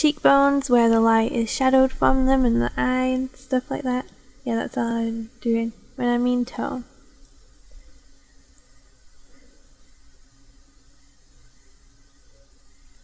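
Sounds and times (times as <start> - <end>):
faint hiss: 0.0 - 13.0
low hum: 0.8 - 13.0.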